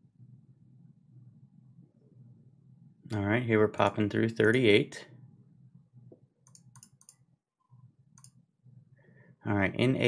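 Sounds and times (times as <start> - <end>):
sharp light mouse clicks: 6.4 - 7.2.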